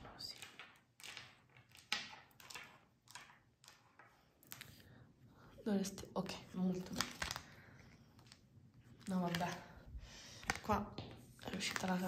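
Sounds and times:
stones clicking on wooden table: 0:00.0 - 0:04.8.

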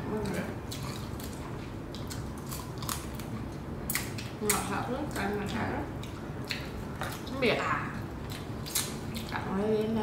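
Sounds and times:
chewing: 0:00.2 - 0:09.6.

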